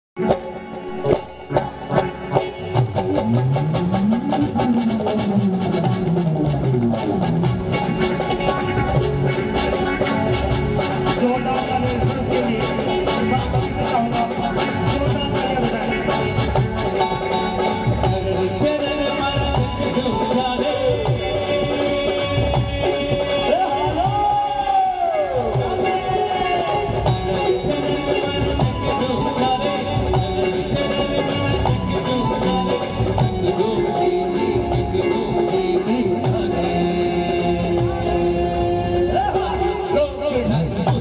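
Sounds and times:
electric guitar: 0:00.2 - 0:41.0
electric keyboard: 0:00.2 - 0:41.0
steady drum beat: 0:00.2 - 0:41.0.

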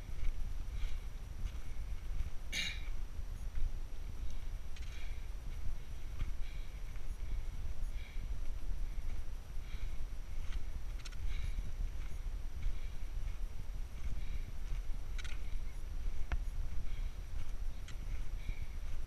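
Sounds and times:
wind rumble on microphone: 0:00.0 - 0:19.0.

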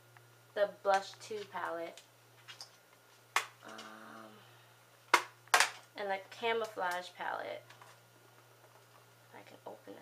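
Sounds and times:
person humming faintly: 0:03.6 - 0:04.6
plastic makeup case clicks: 0:05.1 - 0:05.9.

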